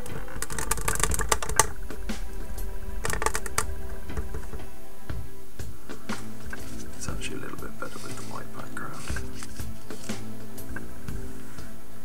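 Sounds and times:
rapid clicking and tapping: 0.0 - 2.4, 3.0 - 4.7
background music: 0.0 - 12.0.

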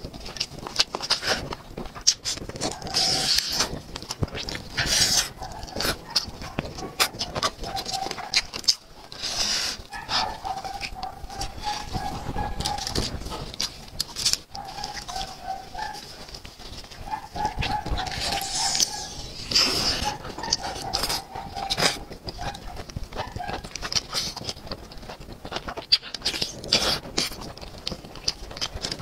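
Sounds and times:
wet chewing and lip smacking: 0.0 - 29.0.

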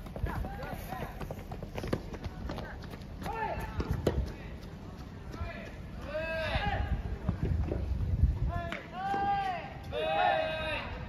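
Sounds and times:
footsteps on pavement: 0.0 - 10.3
people shouting: 6.1 - 6.9, 8.9 - 11.0.

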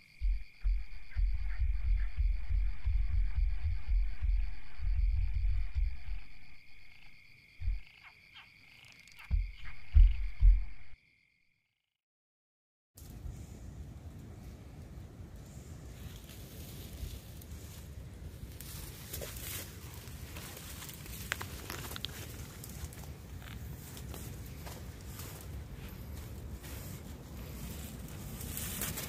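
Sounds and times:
steady low rumble: 0.0 - 7.9, 9.2 - 11.0
brushing past twigs: 15.9 - 29.0
footsteps crunching dry leaves: 18.6 - 29.0.

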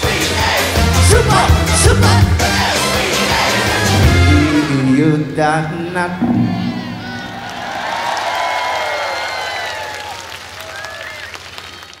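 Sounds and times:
crowd cheering and clapping: 6.2 - 12.0.

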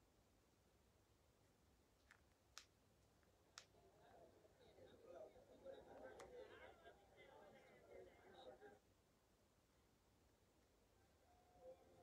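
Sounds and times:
faint sharp clicks: 2.0 - 3.8.

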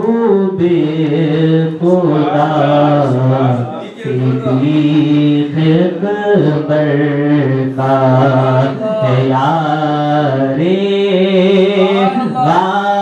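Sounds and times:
man singing into microphone: 0.0 - 13.0.

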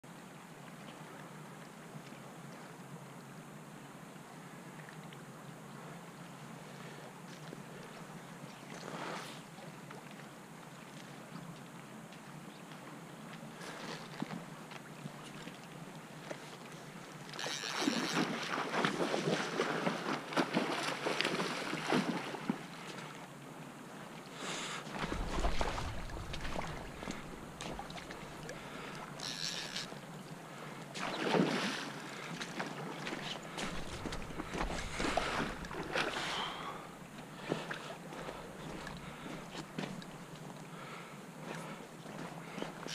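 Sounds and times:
creek water rippling: 0.2 - 42.9
wind on microphone: 24.9 - 28.6
fish splashing in water: 24.9 - 29.9, 31.0 - 31.9, 32.5 - 36.8.

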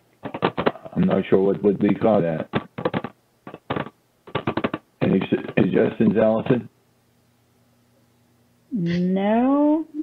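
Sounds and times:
crackling clicks on phone line: 1.8 - 5.7.

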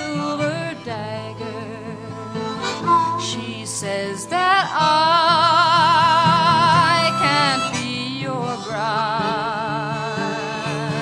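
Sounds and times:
guitar accompaniment: 0.0 - 11.0
woman singing: 0.0 - 11.0
harmonica held note: 6.2 - 11.0.

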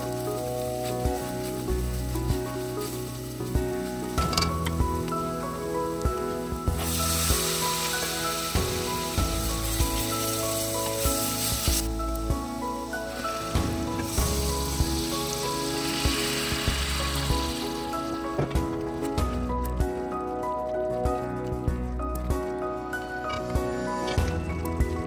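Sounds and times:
oil sizzling with onions: 0.0 - 19.1
background music: 0.0 - 25.0.

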